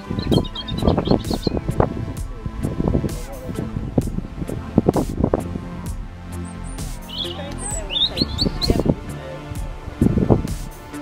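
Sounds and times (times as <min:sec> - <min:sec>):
small bird twittering: 0:00.0 - 0:05.5, 0:06.3 - 0:09.2
low rumble with thumps: 0:00.0 - 0:11.0.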